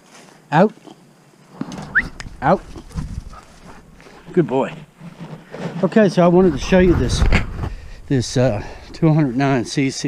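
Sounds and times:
man ordering a dog: 2.4s - 2.8s, 8.1s - 10.0s.

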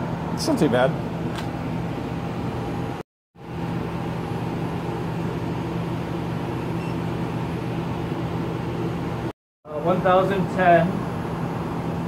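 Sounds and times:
blower humming and hissing: 0.0s - 12.0s.

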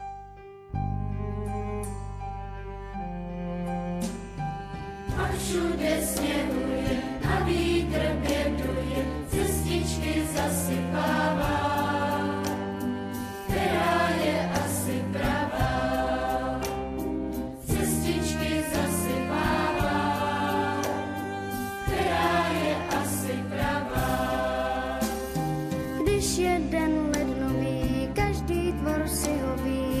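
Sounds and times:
instrumental accompaniment: 0.0s - 30.0s
children's choir singing: 5.2s - 17.0s, 17.6s - 25.6s.

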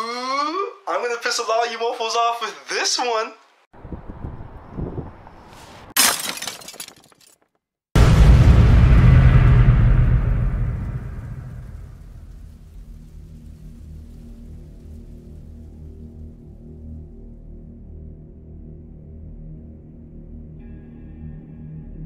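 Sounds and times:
glass breaking crash: 6.0s - 7.4s
deep boom: 8.0s - 15.5s
low dark ambient drone: 8.1s - 22.0s.

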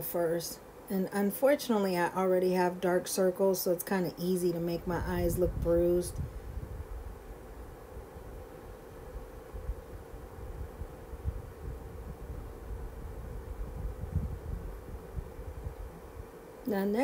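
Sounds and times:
faint steady hum: 0.0s - 17.0s.

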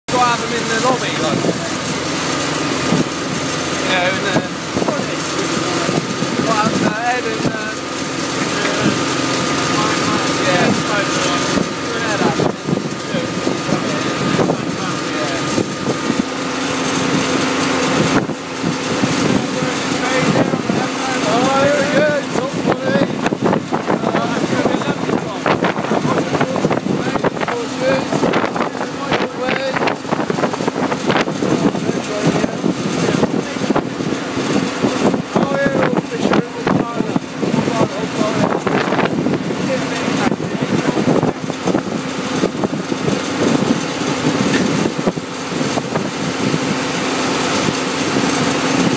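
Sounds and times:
tractor engine running: 0.0s - 48.9s
people talking: 0.1s - 1.9s, 3.6s - 16.2s, 18.8s - 30.0s, 31.1s - 43.6s
wind buffeting microphone: 0.1s - 48.9s.

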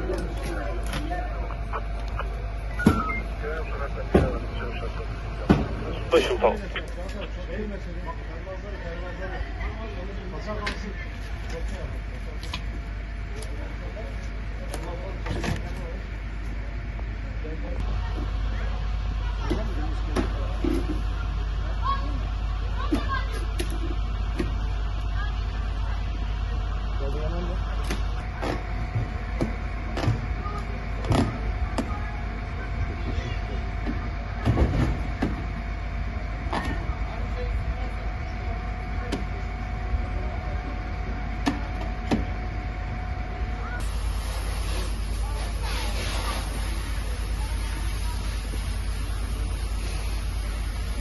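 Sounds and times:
faint hum: 0.0s - 51.0s
faint voices: 0.0s - 51.0s
vehicle engine rumbling: 0.0s - 51.0s.

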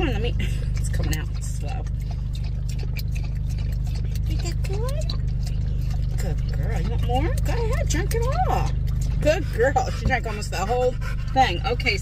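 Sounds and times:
car engine idling: 0.0s - 12.0s
dog lapping water: 0.0s - 12.0s.

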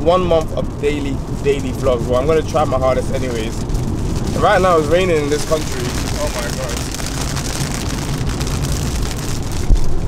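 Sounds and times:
rain hitting car: 0.0s - 10.0s
tyre and road noise: 0.0s - 10.0s.

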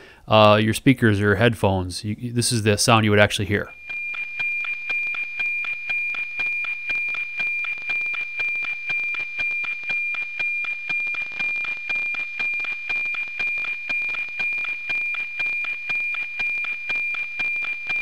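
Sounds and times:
high-pitched tone with ticking: 3.7s - 18.0s.

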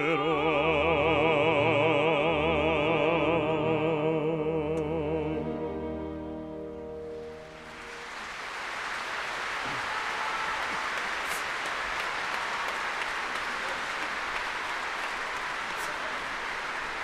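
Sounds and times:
audience applauding: 7.2s - 17.0s.

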